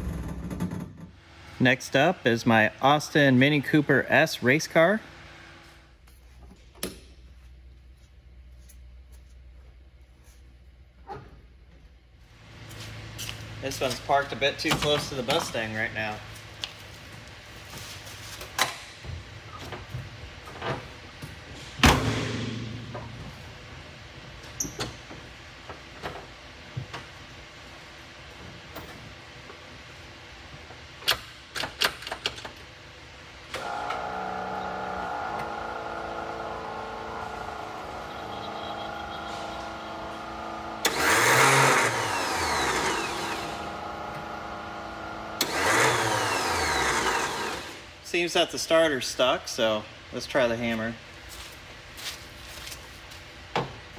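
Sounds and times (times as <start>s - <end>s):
steady electrical hum: 0.0s - 53.9s
engine cranking: 34.8s - 43.6s.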